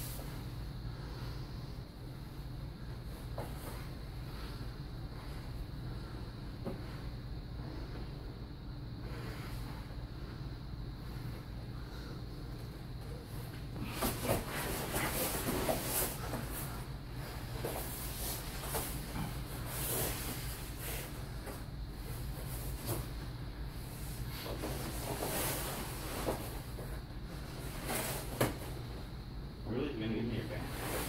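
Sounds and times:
steady low hum: 0.0s - 31.0s
bodies shifting on foam mats: 3.0s - 4.6s, 11.3s - 29.1s
fabric rustling: 13.8s - 21.1s.

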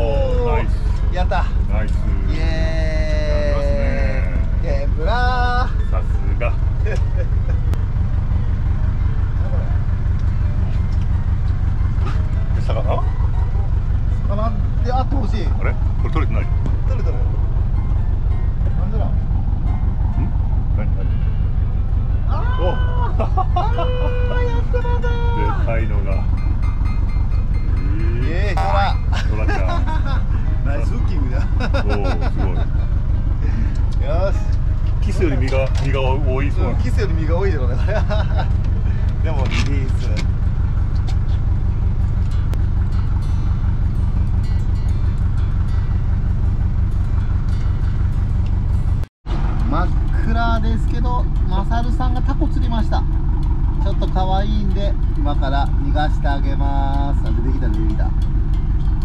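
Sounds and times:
voices: 0.0s - 43.9s, 49.3s - 59.0s
boat engine droning: 0.0s - 59.0s.

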